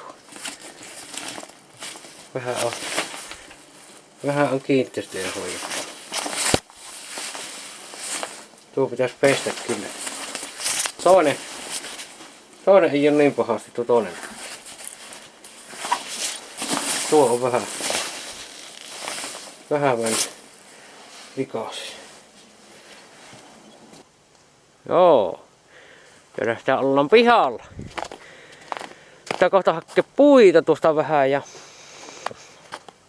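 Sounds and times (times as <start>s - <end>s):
synthetic fabric rustling: 0.0s - 24.0s.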